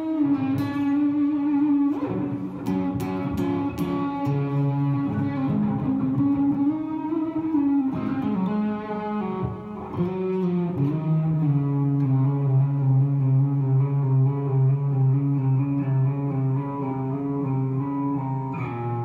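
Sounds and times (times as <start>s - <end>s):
electric guitar playing: 0.0s - 19.0s.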